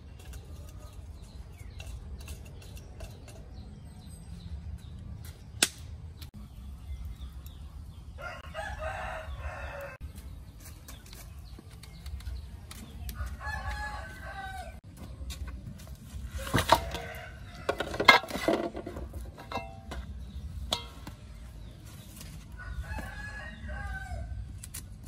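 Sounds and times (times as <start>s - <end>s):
rooster crowing: 8.2s - 10.0s, 22.6s - 24.3s.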